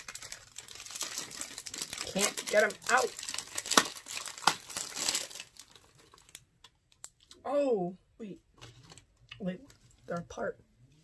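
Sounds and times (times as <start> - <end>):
plastic wrapper crinkling: 0.0 - 7.4.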